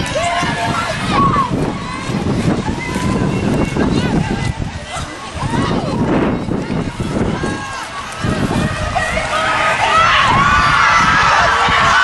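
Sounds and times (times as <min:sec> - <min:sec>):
voices shouting: 0:00.0 - 0:12.0
wind on microphone: 0:00.0 - 0:12.0.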